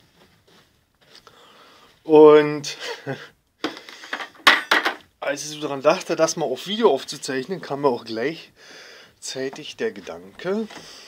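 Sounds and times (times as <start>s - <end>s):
soft low rustle: 0.0s - 2.1s.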